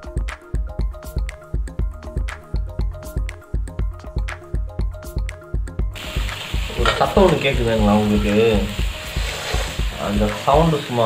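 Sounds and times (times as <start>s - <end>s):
music with steady beat: 0.0s - 11.0s
fish frying in hot oil: 6.0s - 11.0s.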